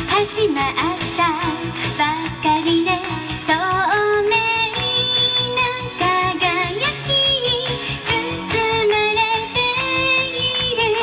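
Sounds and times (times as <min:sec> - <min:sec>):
backing music with steady beat: 0:00.0 - 0:11.0
woman singing into microphone: 0:00.0 - 0:11.0.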